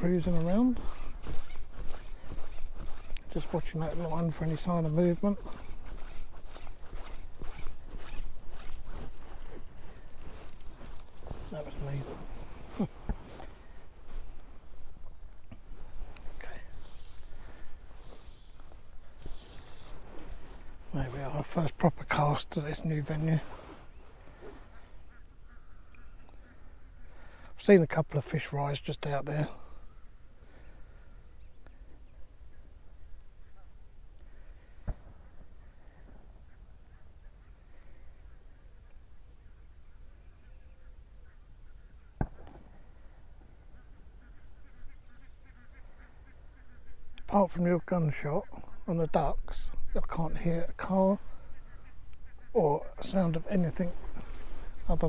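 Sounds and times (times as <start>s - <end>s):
ducks calling: 0.0s - 27.5s, 29.3s - 55.0s.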